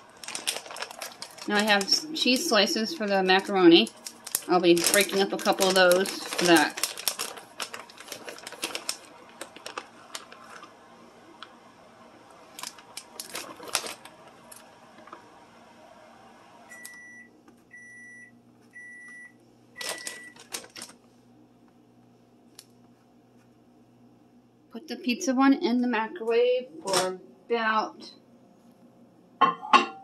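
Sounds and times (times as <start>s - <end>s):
plastic bag crinkling: 0.0s - 10.8s, 12.3s - 15.2s, 19.8s - 21.1s.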